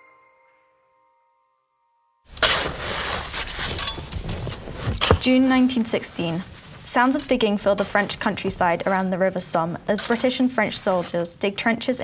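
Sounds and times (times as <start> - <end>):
sharp shovel strikes: 2.3 - 5.8
shovels scraping earth and stones: 2.3 - 9.1, 9.9 - 11.4.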